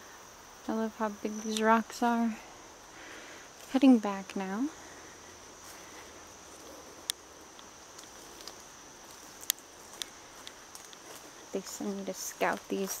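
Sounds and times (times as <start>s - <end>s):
high insect drone: 0.0s - 13.0s
footsteps through undergrowth: 5.2s - 13.0s
twigs snapping underfoot: 6.6s - 11.4s.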